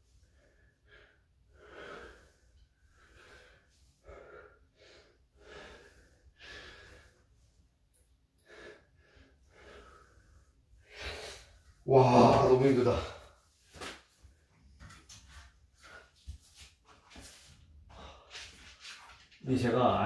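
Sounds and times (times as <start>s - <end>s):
man breathing heavily: 0.0s - 11.9s, 15.7s - 18.8s.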